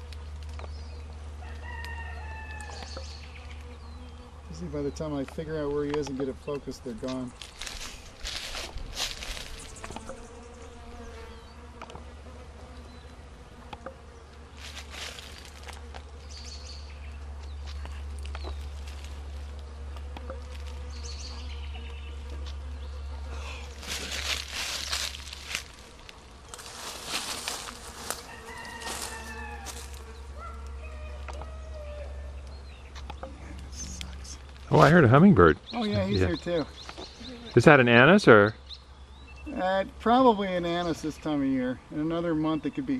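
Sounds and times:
bees and flies buzzing: 0.0 - 42.9.

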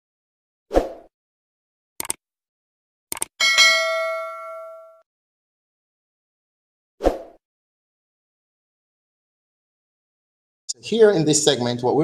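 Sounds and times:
notification bell ding: 3.4 - 5.0.

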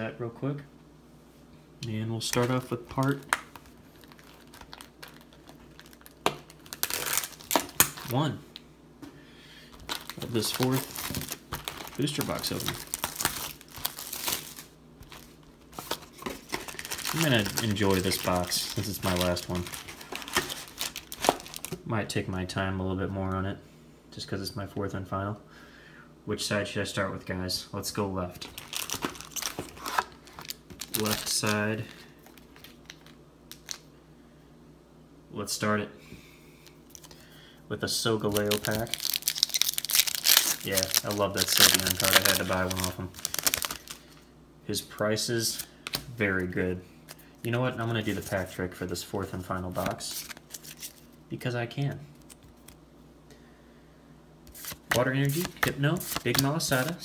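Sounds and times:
plastic wrap crinkling: 2.2 - 8.6, 9.7 - 21.8, 28.4 - 33.9, 36.6 - 37.2, 38.2 - 44.2, 47.1 - 51.2, 54.5 - 57.0.

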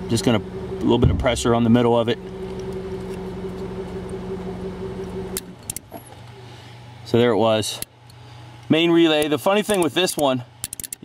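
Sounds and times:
car engine idling: 0.0 - 7.3
sharp relay clicks: 9.1 - 11.0.

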